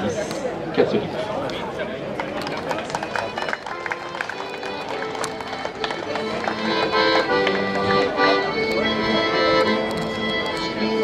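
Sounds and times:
crowd chatter: 0:00.0 - 0:11.0
accordion playing folk music: 0:02.6 - 0:11.0.

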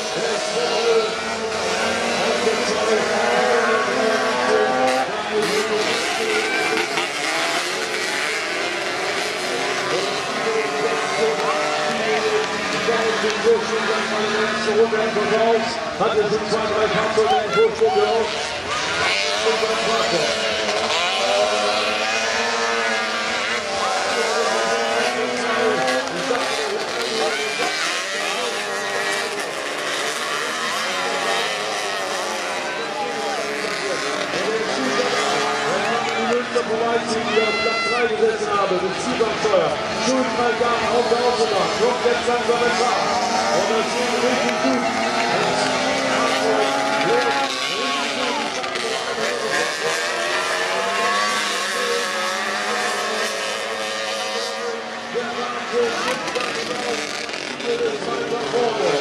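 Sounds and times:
racing buggy engines: 0:00.0 - 0:59.0.

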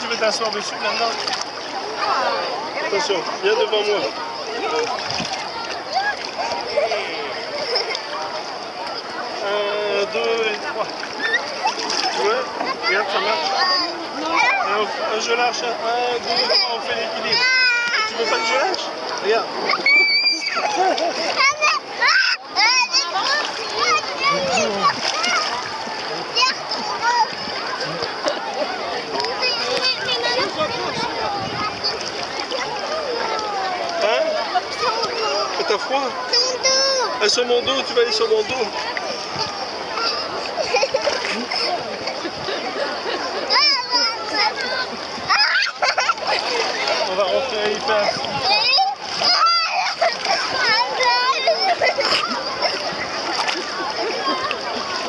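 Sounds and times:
bathers' voices: 0:00.0 - 0:55.0
water splashing: 0:00.0 - 0:55.0
children's high calls: 0:11.0 - 0:14.8, 0:19.6 - 0:37.2, 0:43.3 - 0:47.1, 0:47.9 - 0:55.0.

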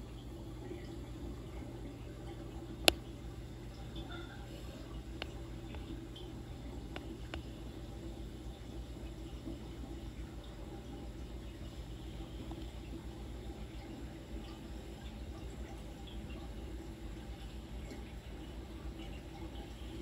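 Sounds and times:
low constant hum: 0:00.0 - 0:20.0
water trickling and dripping: 0:00.0 - 0:20.0.

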